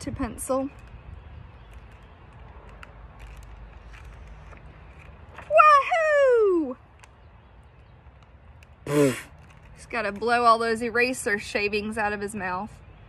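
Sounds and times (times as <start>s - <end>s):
woman calling out playfully: 5.5s - 6.8s.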